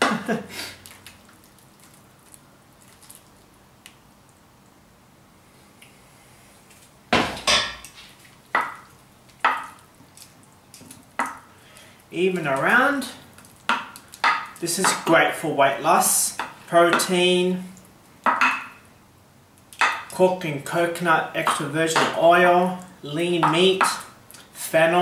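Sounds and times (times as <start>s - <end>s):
frying pan clattering on stovetop: 7.2s - 8.0s
wooden spoon knocking on pan: 8.6s - 8.8s, 11.2s - 11.4s, 13.7s - 15.1s, 18.3s - 18.8s.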